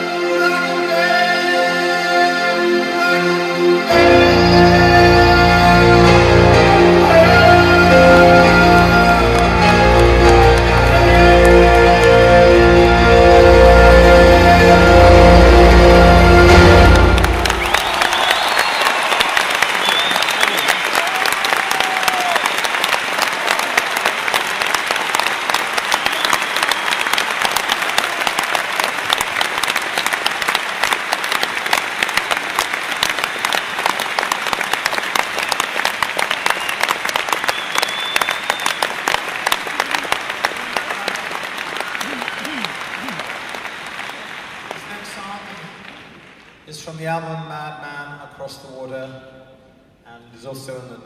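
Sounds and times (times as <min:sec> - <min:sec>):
audience applauding: 0:07.0 - 0:46.7
shouts from audience: 0:19.9 - 0:22.6.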